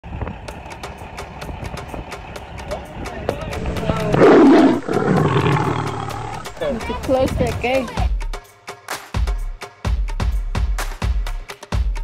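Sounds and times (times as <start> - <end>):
lion roaring: 3.6 - 6.8
fast regular ticking: 3.6 - 7.2.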